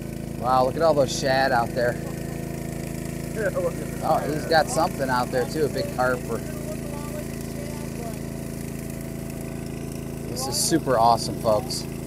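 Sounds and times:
boat engines humming: 0.0s - 12.0s.

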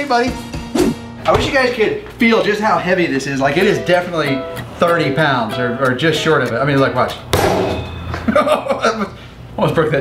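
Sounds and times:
person chuckling: 8.2s - 9.3s.

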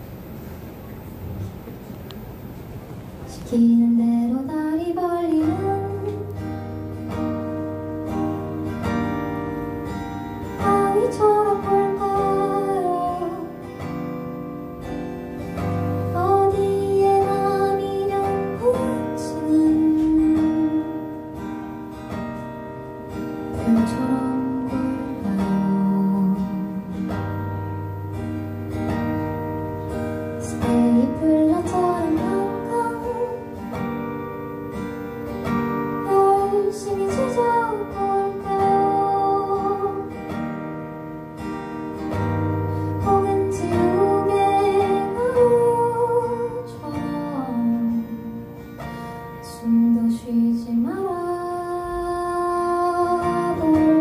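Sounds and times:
acoustic guitar strumming: 0.0s - 54.0s
woman singing into a microphone: 3.3s - 9.4s, 10.4s - 13.9s, 15.8s - 21.5s, 23.5s - 27.7s, 30.3s - 33.8s, 35.8s - 40.4s, 42.4s - 54.0s.

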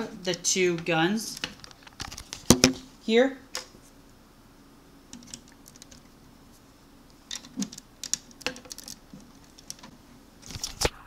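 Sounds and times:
plastic pieces clicking: 7.3s - 10.8s.

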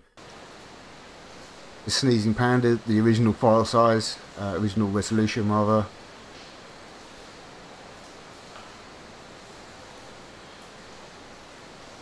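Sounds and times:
steady ambience hiss: 0.0s - 12.0s.

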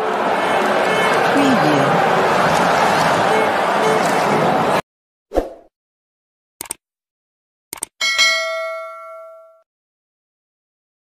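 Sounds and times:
short clicks: 6.6s - 6.8s, 7.7s - 8.0s
bell-like notification ding: 8.0s - 9.6s.

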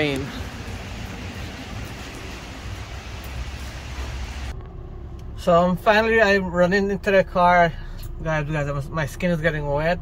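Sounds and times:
heavy rain pouring: 0.0s - 4.5s.

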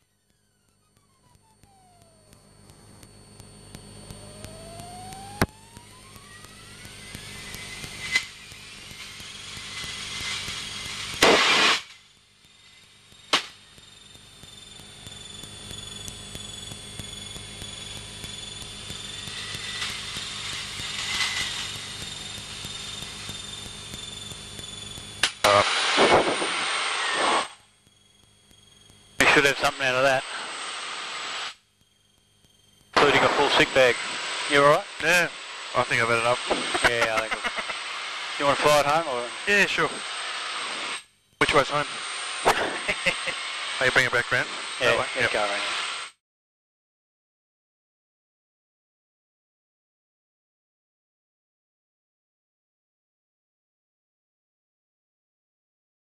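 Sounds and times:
sharp clicks: 0.0s - 12.0s
light aircraft engine whine: 0.0s - 45.9s
loud noise blasts: 11.1s - 11.9s, 25.2s - 27.6s, 33.0s - 34.2s.

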